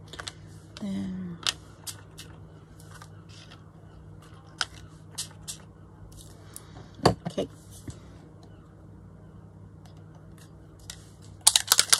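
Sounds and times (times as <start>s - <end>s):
faint steady hum: 0.0s - 11.9s.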